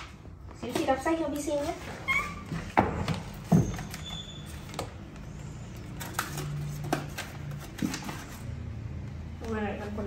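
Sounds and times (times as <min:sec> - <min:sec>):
book handling noise: 0:00.0 - 0:09.5.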